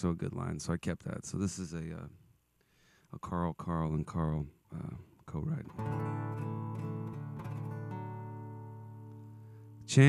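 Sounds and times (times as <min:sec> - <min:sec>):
acoustic guitar chords strummed: 0:05.7 - 0:10.0.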